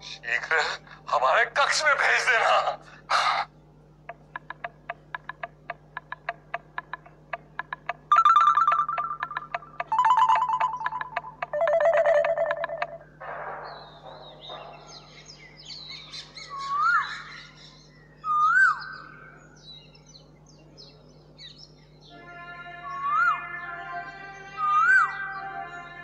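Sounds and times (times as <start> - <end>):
forest bird calls: 2.8 - 23.4
steady ticking clicks: 4.1 - 13.0.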